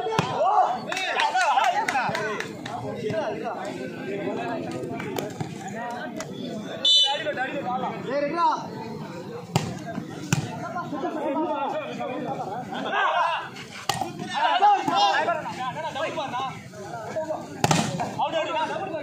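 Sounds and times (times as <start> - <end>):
spectators calling and shouting: 0.0 - 19.0
volleyball slapped by hand: 17.6 - 18.0.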